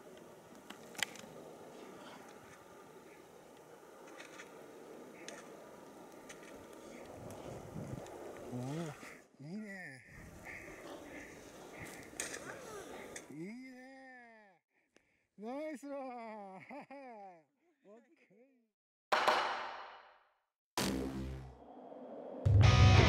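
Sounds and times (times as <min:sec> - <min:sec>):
wind on microphone: 0:07.1 - 0:08.6
skis hissing through snow: 0:10.2 - 0:13.2.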